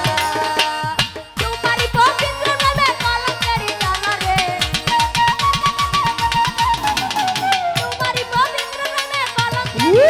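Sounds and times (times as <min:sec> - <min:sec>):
held melody line: 0:00.0 - 0:10.0.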